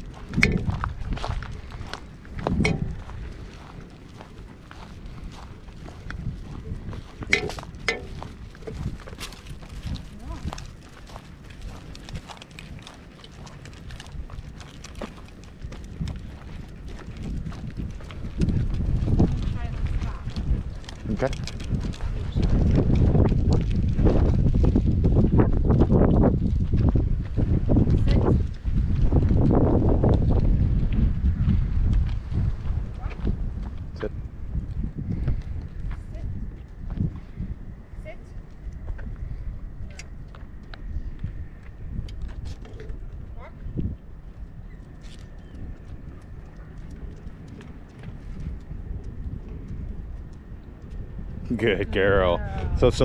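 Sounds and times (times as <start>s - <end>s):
footsteps on paved path: 0.0s - 53.0s
wind buffeting microphone: 0.0s - 53.0s.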